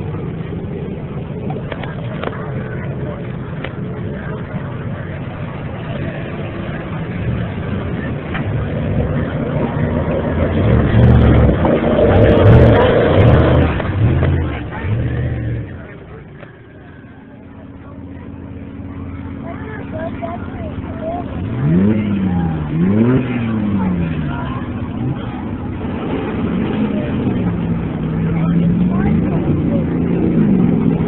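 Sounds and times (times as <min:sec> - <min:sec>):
truck engine revving hard: 0:00.0 - 0:16.9, 0:17.8 - 0:31.0
crowd voices: 0:00.0 - 0:31.0.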